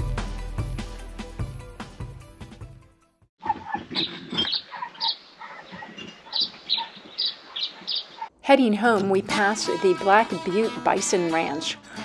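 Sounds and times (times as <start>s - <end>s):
birds chirping: 3.4s - 8.3s.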